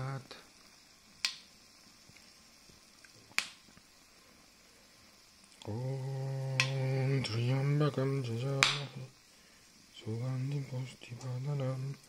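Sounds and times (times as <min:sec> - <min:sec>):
fire crackling pops: 0:00.0 - 0:12.0
faint ticks: 0:05.4 - 0:05.8, 0:06.4 - 0:07.0.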